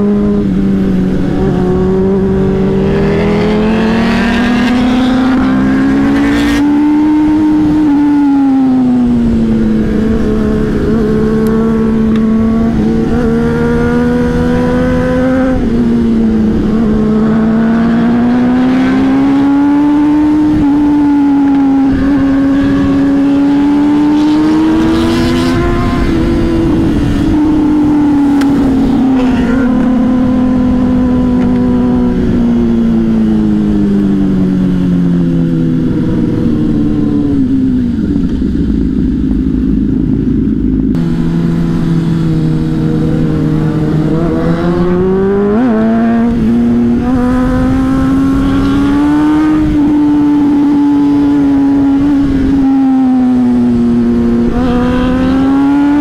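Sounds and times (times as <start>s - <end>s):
motorcycle engine revving: 0.0s - 56.0s
wind noise: 0.0s - 56.0s.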